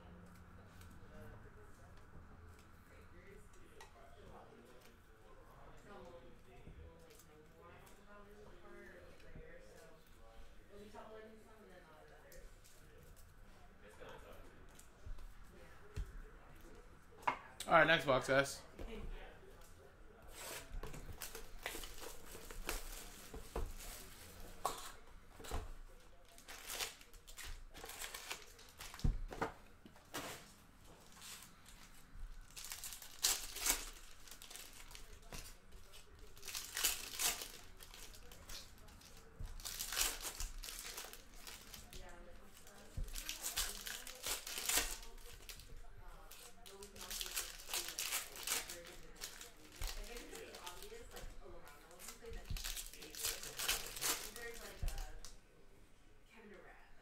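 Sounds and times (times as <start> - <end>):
foil packs tearing and crinkling: 26.3 - 29.0, 32.5 - 35.6, 36.3 - 45.6, 46.3 - 51.2, 51.9 - 55.1.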